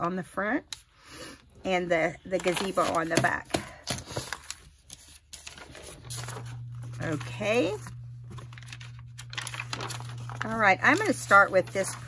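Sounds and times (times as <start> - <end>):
paper rustling and sliding: 3.9 - 12.0.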